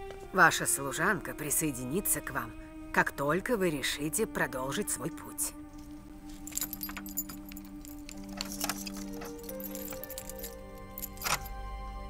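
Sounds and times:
low background music: 0.0 - 12.0
metal ornaments jingling: 5.7 - 11.5.

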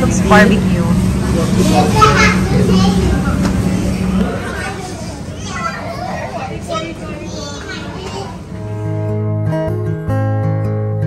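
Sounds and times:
indistinct voices: 0.0 - 8.6
children chattering: 0.0 - 8.8
acoustic guitar music: 0.0 - 11.0
busy background hum: 0.0 - 11.0.

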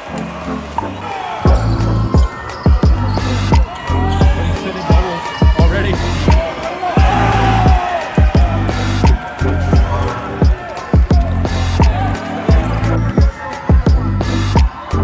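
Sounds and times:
sneakers squeaking: 0.0 - 14.9
arena music: 0.0 - 15.0
crowd chatter: 0.0 - 15.0.

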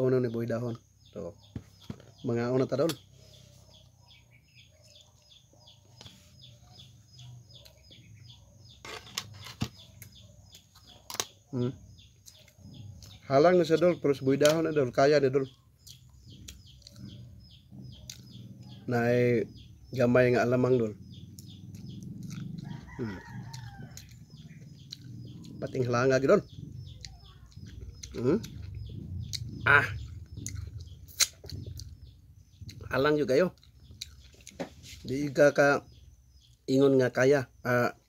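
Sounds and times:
faint bird chirping: 0.0 - 38.0
low steady hum: 15.8 - 35.1
rooster crowing: 22.6 - 24.5.

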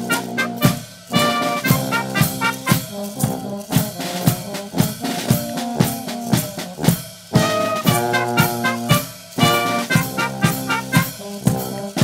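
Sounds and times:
bass drum and snare drum: 0.0 - 12.0
brass band playing: 0.0 - 12.0.

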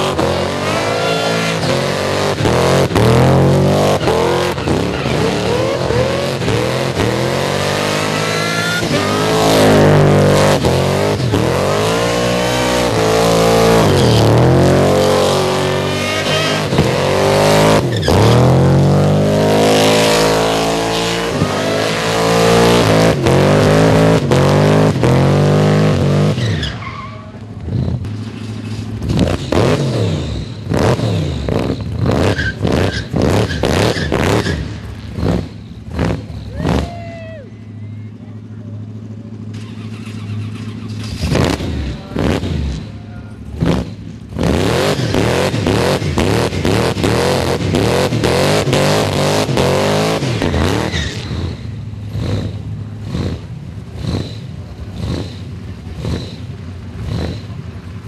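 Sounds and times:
car engine revving hard: 0.0 - 26.6, 29.0 - 36.9, 39.6 - 43.0, 43.6 - 57.6
tyres screeching: 0.0 - 38.2, 39.4 - 53.4
sharp exhaust cracks: 39.4 - 58.0.

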